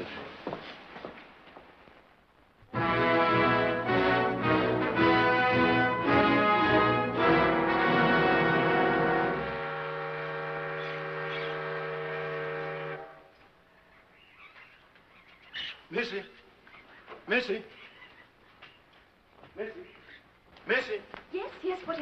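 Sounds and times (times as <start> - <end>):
orchestral music with brass: 2.7 - 13.2.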